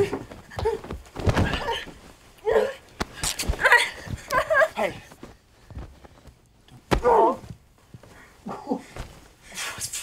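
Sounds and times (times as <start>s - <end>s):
physical struggle: 0.0s - 10.0s.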